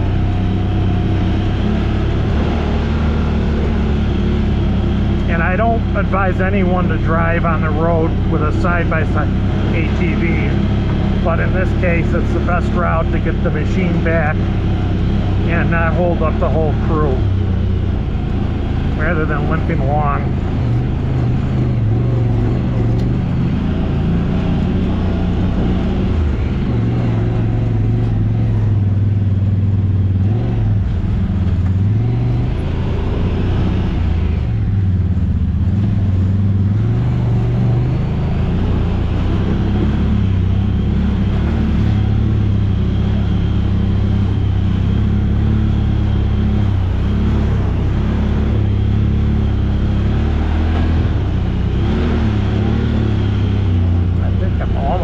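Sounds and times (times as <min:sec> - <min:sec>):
off-road vehicle engine running: 0:00.0 - 0:55.0.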